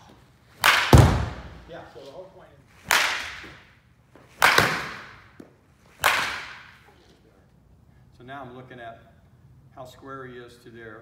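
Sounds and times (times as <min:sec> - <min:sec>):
baseball bat striking ball: 0:00.6 - 0:01.7, 0:02.8 - 0:06.8.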